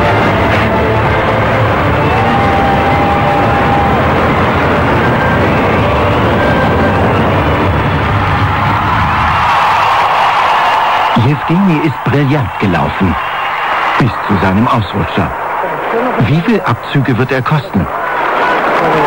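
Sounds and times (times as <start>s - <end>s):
music with sustained tones: 0.0s - 8.8s
arena crowd applauding and cheering: 0.0s - 19.0s.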